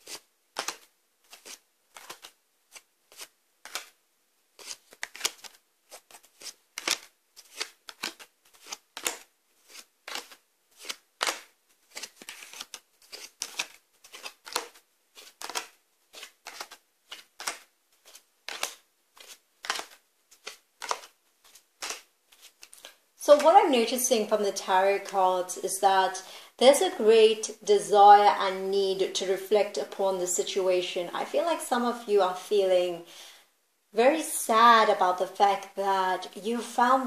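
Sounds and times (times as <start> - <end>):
cards clicking onto a tabletop: 0.6 - 1.4, 3.1 - 4.0, 6.8 - 9.3, 10.1 - 14.8, 15.4 - 17.7, 18.5 - 21.1, 21.8 - 22.0.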